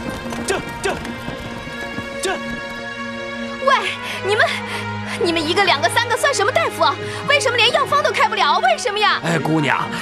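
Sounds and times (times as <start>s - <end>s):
horse hooves clip-clopping: 0.0s - 3.3s
background music: 0.0s - 10.0s.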